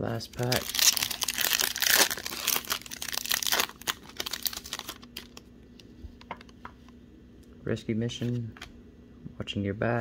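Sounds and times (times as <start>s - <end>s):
foil wrapper tearing and crinkling: 0.3s - 5.4s.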